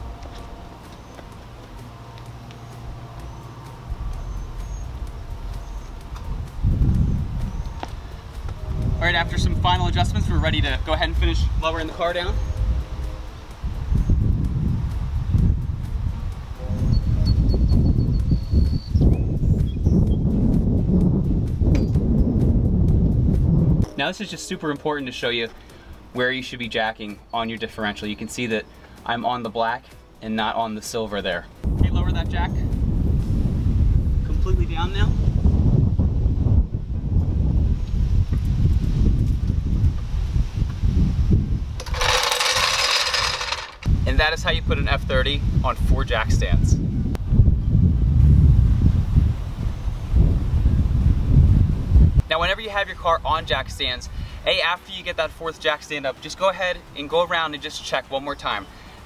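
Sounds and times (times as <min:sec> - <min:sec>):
wind buffeting microphone: 0:02.9 - 0:23.9, 0:31.6 - 0:54.4
floor jack working: 0:41.8 - 0:43.9.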